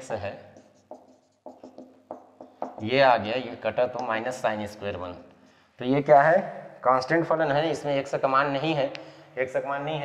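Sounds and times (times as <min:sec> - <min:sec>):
marker writing on whiteboard: 0:00.0 - 0:04.4.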